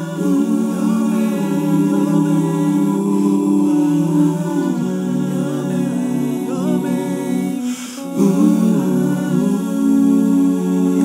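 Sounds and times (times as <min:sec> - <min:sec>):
layered male a cappella vocals: 0:00.0 - 0:11.0
breathy hiss: 0:07.5 - 0:08.4.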